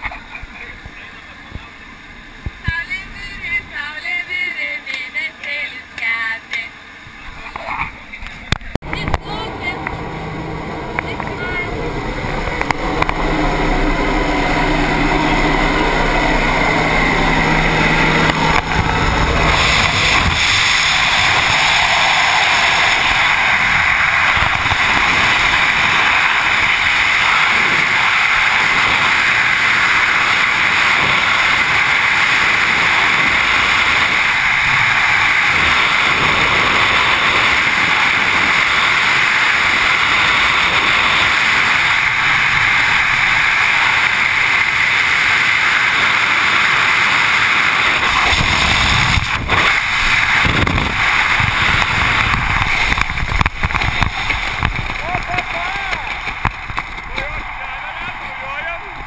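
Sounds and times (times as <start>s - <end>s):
plane engine drone: 0.0s - 59.0s
rushing air: 8.5s - 59.0s.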